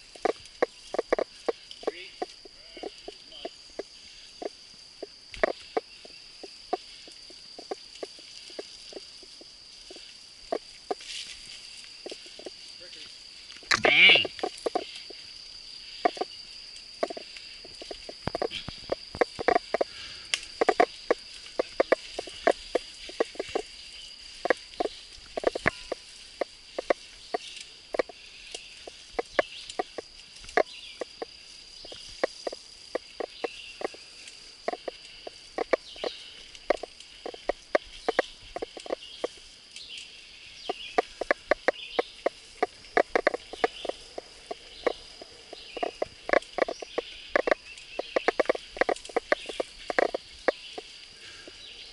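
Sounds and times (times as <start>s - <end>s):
mountain bike clattering on dirt: 0.0s - 4.6s, 5.4s - 15.3s, 15.9s - 51.8s
high insect drone: 0.0s - 51.9s.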